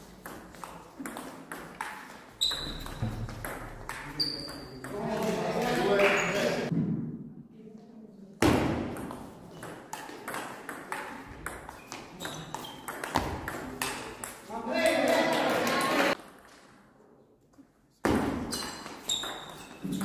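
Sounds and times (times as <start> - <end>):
table tennis ball pinging: 0.2 - 5.0, 9.0 - 14.4, 18.1 - 20.0.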